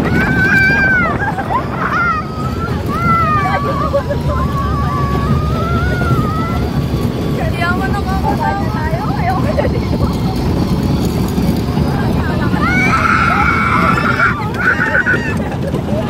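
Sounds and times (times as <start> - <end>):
child shrieking: 0.0 - 6.8, 12.5 - 15.5
wind on microphone: 0.0 - 16.0.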